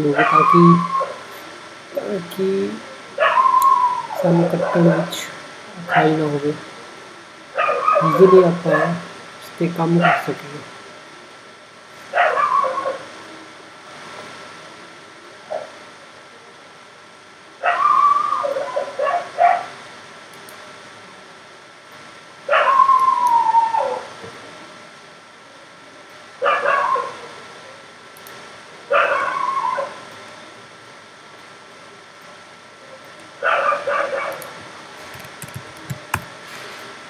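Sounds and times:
dog yelping: 3.2s - 4.2s, 7.6s - 8.2s, 12.2s - 13.0s, 17.6s - 19.7s, 22.5s - 24.0s, 26.4s - 27.2s, 28.9s - 30.0s, 33.4s - 34.4s
dog howling: 3.2s - 4.8s, 7.6s - 9.0s, 12.2s - 13.1s, 17.6s - 19.7s, 22.5s - 24.1s, 26.4s - 27.2s, 28.9s - 30.0s.

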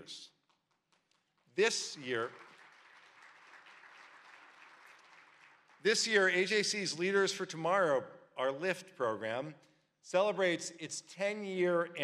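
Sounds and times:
faint audience applause: 0.9s - 6.5s.

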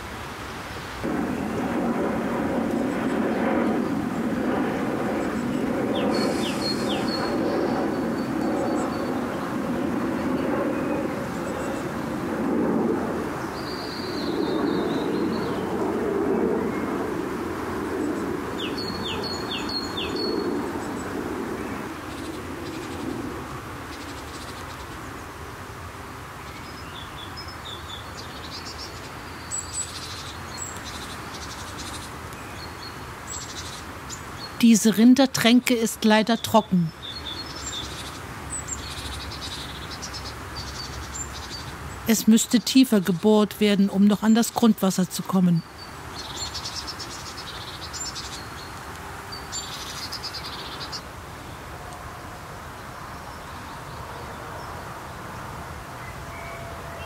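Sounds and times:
steady low rumble: 1.0s - 19.5s
songbirds singing: 5.1s - 12.2s, 13.3s - 17.2s, 18.0s - 25.0s, 26.4s - 52.0s, 52.7s - 57.0s.

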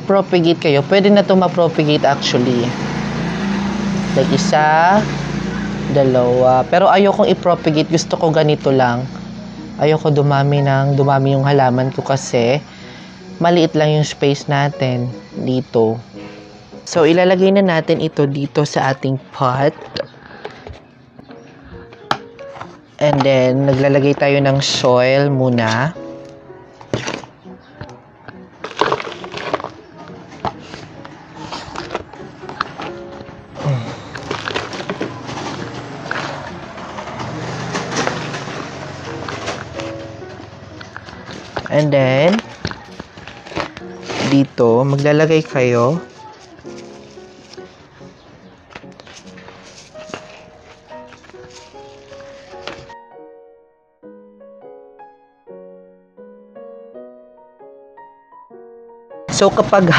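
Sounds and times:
faint background music: 0.0s - 59.9s
trowel scraping soil: 26.9s - 27.3s, 28.6s - 29.8s, 30.4s - 33.0s, 40.9s - 48.1s, 49.0s - 52.9s.

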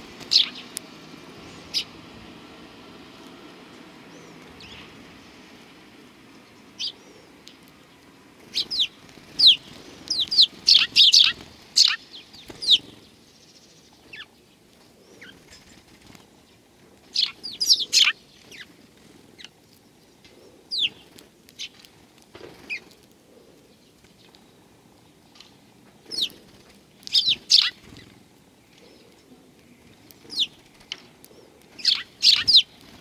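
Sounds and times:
sparrows chirping: 0.0s - 33.0s.

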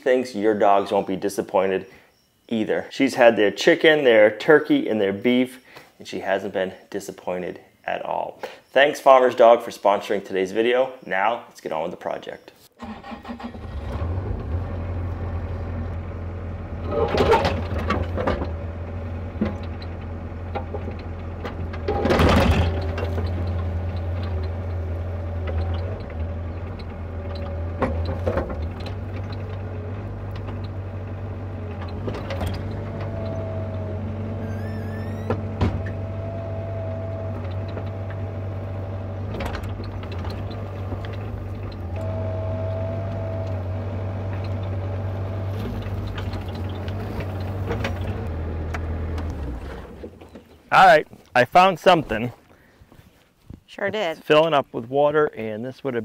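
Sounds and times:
hydraulic whine: 12.8s - 50.2s
diesel engine running: 13.2s - 50.2s.

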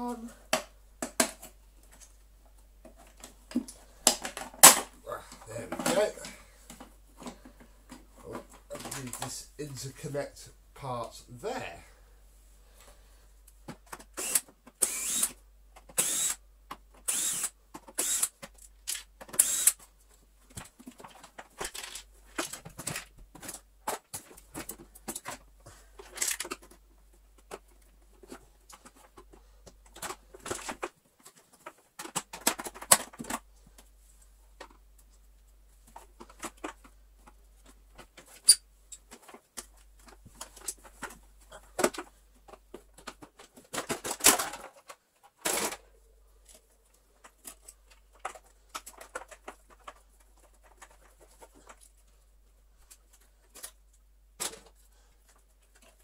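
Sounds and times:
plastic parts clicking and scraping: 0.4s - 9.4s, 12.8s - 56.0s.

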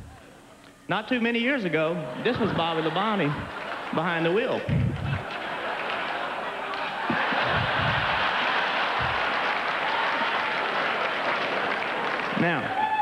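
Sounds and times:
audience laughing: 1.9s - 12.3s
audience applauding: 2.6s - 13.0s.

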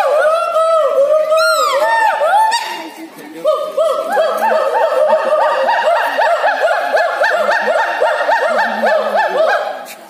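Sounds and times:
gibbons whooping: 0.0s - 2.8s, 3.4s - 10.0s.

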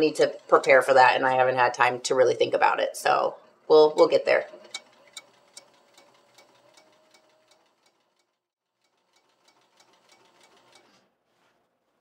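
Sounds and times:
faint motor hum: 0.0s - 12.0s
sewing machine stitch ticks: 4.4s - 11.0s.

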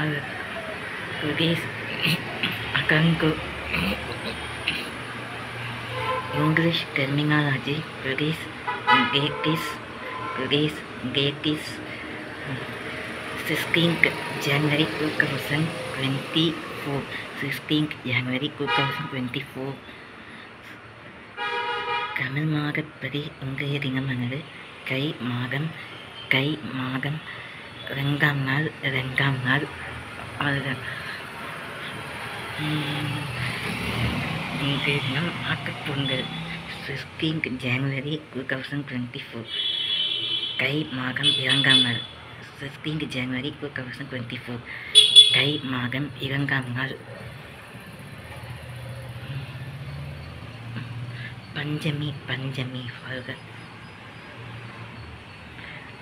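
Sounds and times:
faint street background: 0.0s - 56.0s
vehicle horn honk: 5.9s - 6.4s, 8.7s - 10.5s, 21.4s - 22.2s, 39.5s - 40.6s, 41.2s - 42.1s, 45.0s - 45.6s.

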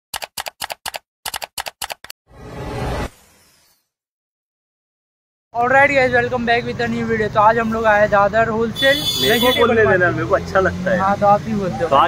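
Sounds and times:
keyboard typing clicks: 0.1s - 2.1s.

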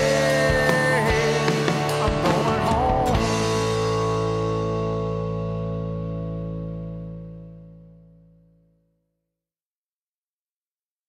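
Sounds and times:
drum hits: 0.0s - 4.3s
rock band chord ringing out: 0.0s - 8.2s.

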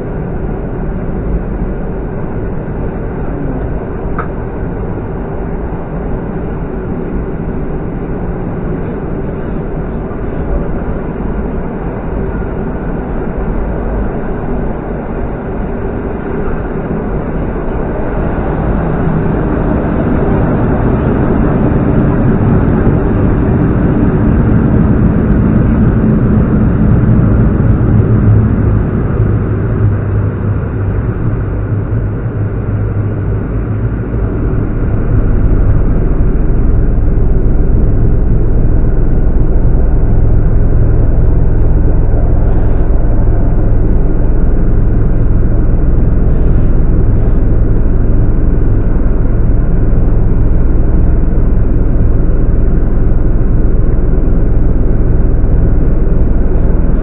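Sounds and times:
train rumble inside carriage: 0.0s - 57.0s.

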